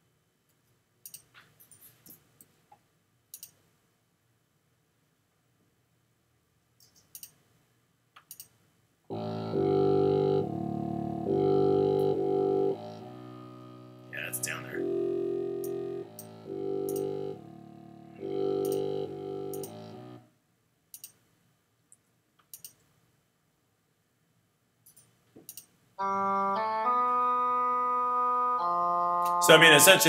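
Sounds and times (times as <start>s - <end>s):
low contrabassoon notes: 9.1s - 20.2s, 26.0s - 30.0s
mouse clicks: 20.9s - 21.2s, 22.4s - 22.9s.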